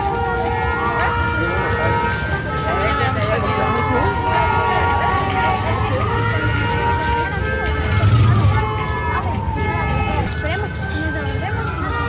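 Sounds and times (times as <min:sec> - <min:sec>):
crowd chatter: 0:00.0 - 0:12.0
siren wailing: 0:00.0 - 0:12.0.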